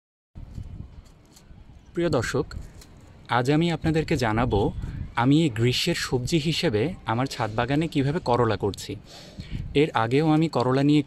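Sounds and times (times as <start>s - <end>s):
low rumbling microphone noise: 7.8s - 9.9s.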